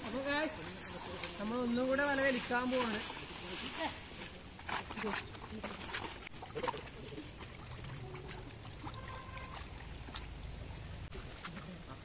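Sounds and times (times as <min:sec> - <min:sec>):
water sloshing as people wade: 0:00.0 - 0:12.0.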